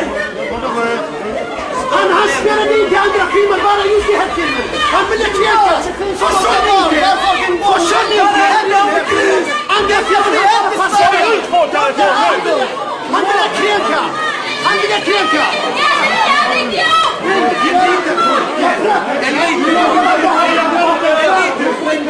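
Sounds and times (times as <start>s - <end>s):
people talking over one another: 0.0s - 22.0s.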